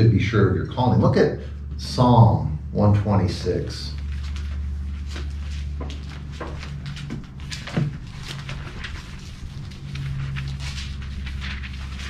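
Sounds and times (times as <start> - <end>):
low hum: 0.0 - 12.0
pages rustling and flicking: 3.9 - 12.0.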